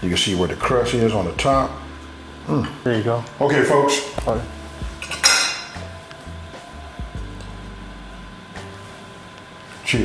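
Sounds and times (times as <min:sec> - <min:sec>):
plate clinking: 0:05.0 - 0:05.9
utensil clinking: 0:05.0 - 0:05.9.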